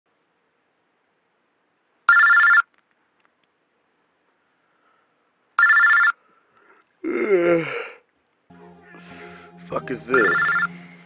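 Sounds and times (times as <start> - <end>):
telephone ringing: 2.1 - 2.7, 5.6 - 6.2, 10.1 - 10.8.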